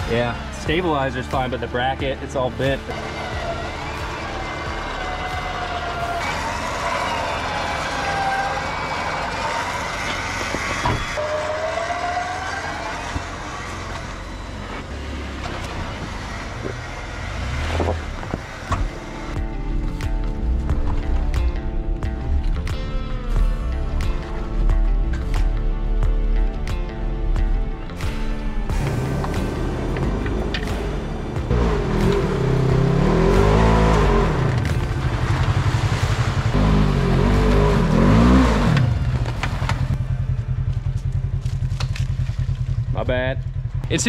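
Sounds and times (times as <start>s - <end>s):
background music: 0.0s - 13.0s, 16.9s - 41.3s
vehicle motor whine: 2.4s - 43.9s.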